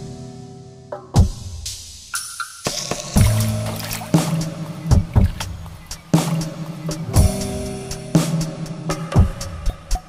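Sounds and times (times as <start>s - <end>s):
heavy low drum beat: 3.2s - 10.0s.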